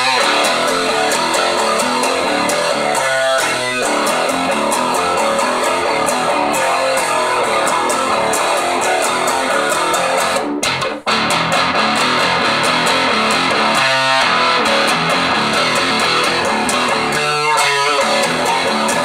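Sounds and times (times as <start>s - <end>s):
electric guitar riff: 0.0s - 19.0s.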